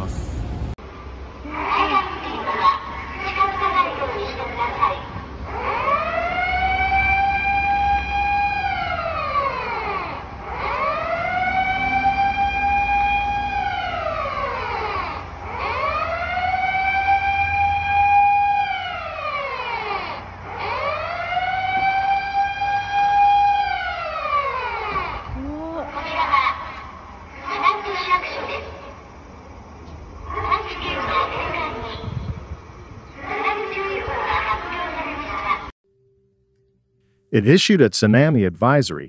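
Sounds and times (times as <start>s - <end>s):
siren rising and falling: 2.6s - 28.9s.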